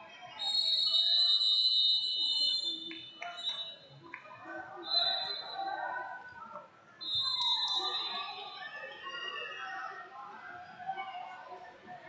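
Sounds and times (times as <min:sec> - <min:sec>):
murmur of large sports hall: 0:00.0 - 0:12.0.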